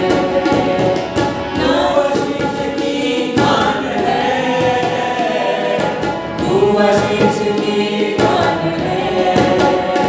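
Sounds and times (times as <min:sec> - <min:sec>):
harmonium chords: 0:00.0 - 0:10.0
men singing together: 0:00.0 - 0:10.0
tabla strokes: 0:00.0 - 0:10.0.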